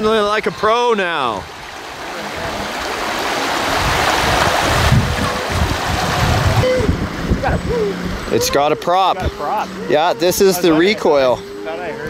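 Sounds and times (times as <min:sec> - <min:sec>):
water rushing over rocks: 0:00.0 - 0:07.5
low rumbling: 0:01.4 - 0:12.0.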